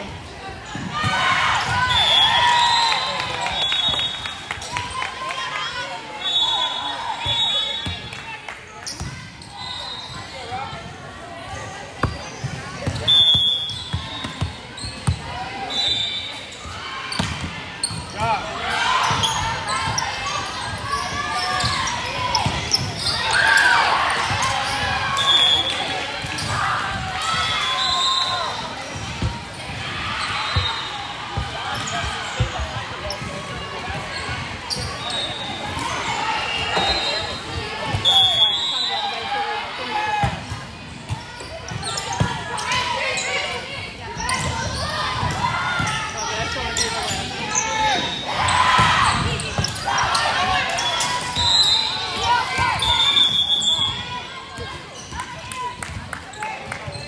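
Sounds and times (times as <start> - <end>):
people calling and shouting: 0.0 - 57.0
sneakers squeaking on floor: 8.7 - 10.9, 11.9 - 39.0, 40.3 - 55.2.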